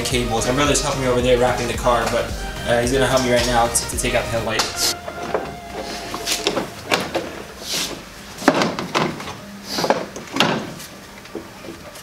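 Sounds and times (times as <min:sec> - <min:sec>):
plastic knocks and scrapes: 0:08.4 - 0:11.8.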